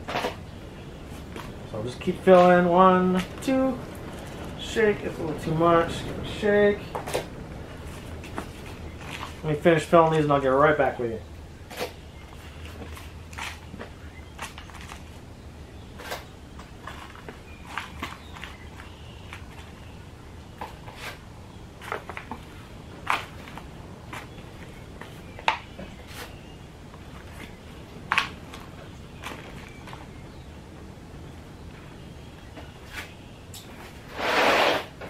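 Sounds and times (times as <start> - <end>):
soil rustling: 0.0 - 35.0.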